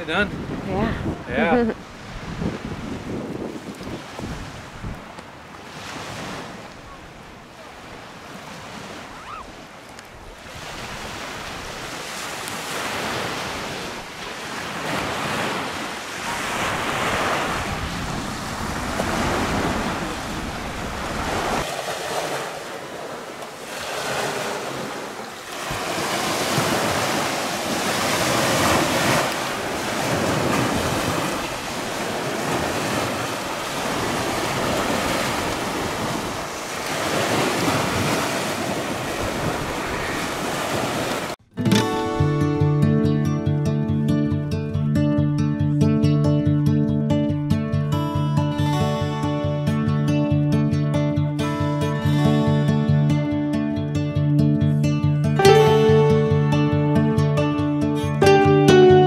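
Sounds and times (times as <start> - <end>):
wind buffeting microphone: 0.0 - 8.1, 13.2 - 21.7, 22.8 - 41.4
small waves breaking on beach: 0.0 - 41.4.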